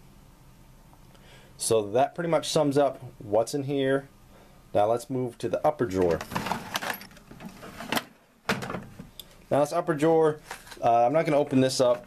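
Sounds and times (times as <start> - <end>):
toolbox drawer sliding: 6.1 - 8.1.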